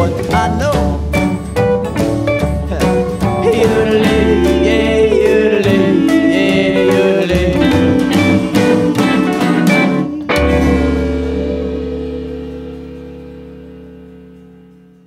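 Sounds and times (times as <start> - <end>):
instrumental band playing: 0.0 - 15.0
final band chord ringing: 3.2 - 15.0.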